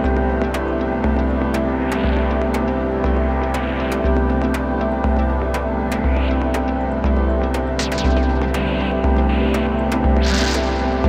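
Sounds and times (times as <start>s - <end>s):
electronic background music: 0.0s - 11.0s
light ticking percussion: 0.0s - 11.0s.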